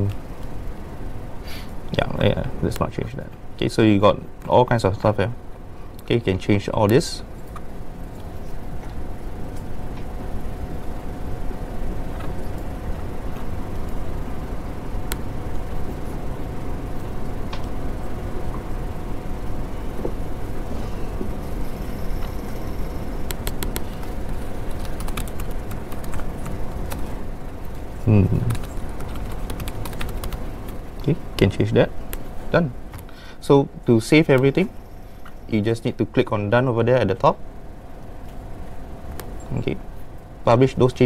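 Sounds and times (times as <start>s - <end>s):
faint constant hum: 0.0s - 41.0s
laptop keyboard typing: 23.2s - 27.1s, 28.4s - 30.8s.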